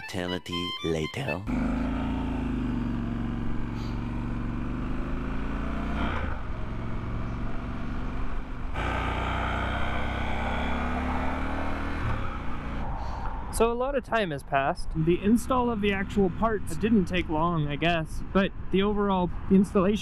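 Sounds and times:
motorcycle engine running: 1.5 - 11.6, 15.2 - 19.5.

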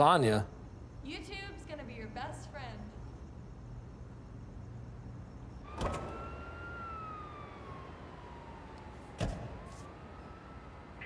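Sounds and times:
siren wailing: 5.7 - 11.0.

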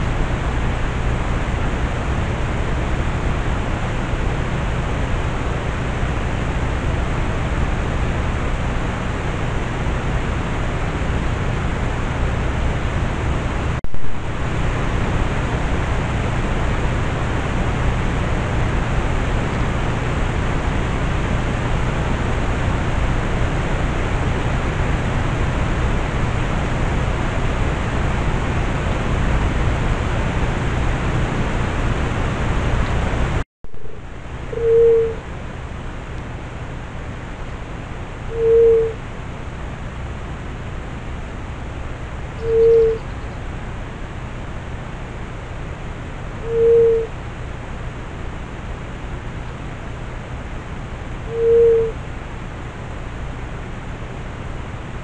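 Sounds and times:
microphone hiss: 0.0 - 55.0.

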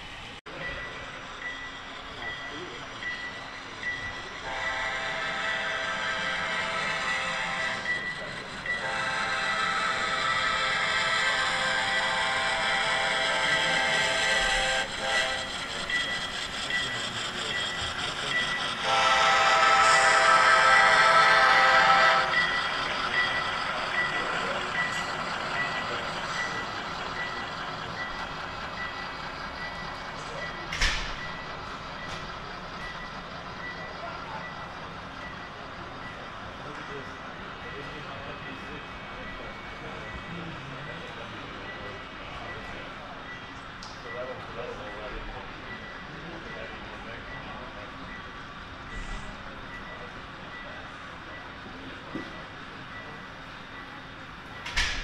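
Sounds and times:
model train running noise: 0.0 - 55.0
locomotive bell ringing: 0.5 - 55.0.

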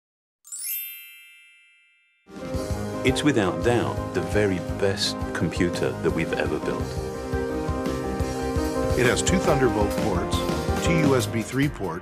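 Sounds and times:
music: 0.5 - 1.4, 2.2 - 12.0
bell-like chime: 0.5 - 2.8.

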